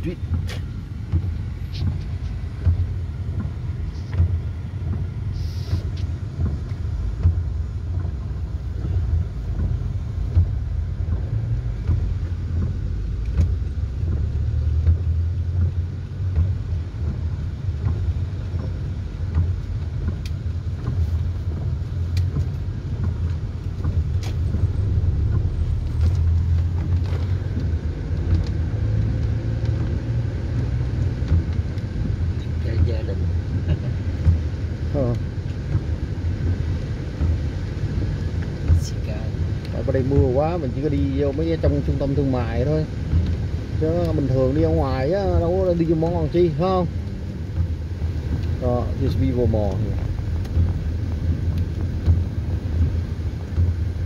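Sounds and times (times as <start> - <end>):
car driving on wet road: 0.0 - 54.0.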